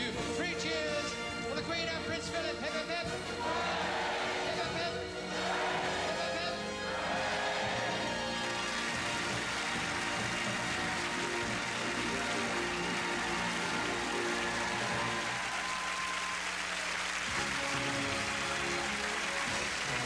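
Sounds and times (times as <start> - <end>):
orchestra playing: 0.0 - 16.2, 17.1 - 20.0
audience applause: 3.3 - 4.6, 5.2 - 20.0.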